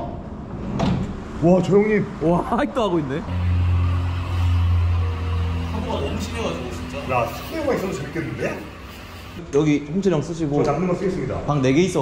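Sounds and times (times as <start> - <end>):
vehicle engine droning: 2.0 - 9.4.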